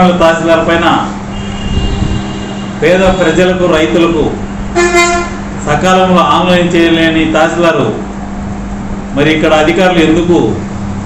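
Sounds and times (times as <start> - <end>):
man speaking: 0.0 - 1.2, 2.8 - 4.4, 5.6 - 8.1, 9.2 - 10.6
steady background hum: 0.0 - 11.0.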